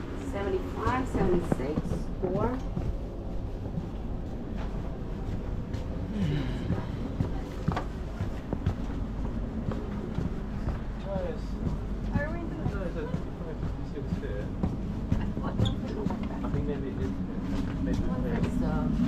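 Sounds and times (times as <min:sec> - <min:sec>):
rail car rumble: 0:00.0 - 0:19.0
faint passenger voices: 0:00.2 - 0:19.0.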